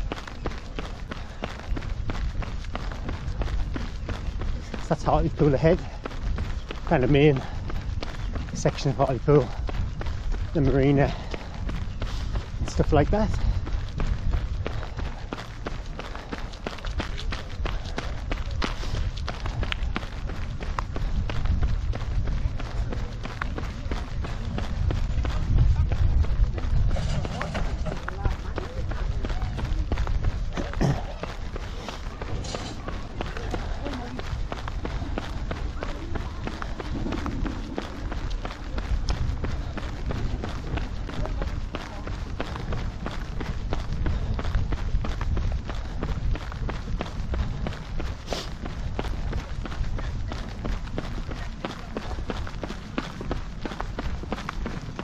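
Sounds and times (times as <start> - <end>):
running footsteps on tarmac: 0.0 - 55.0
wind rumbling on microphone: 0.0 - 55.0.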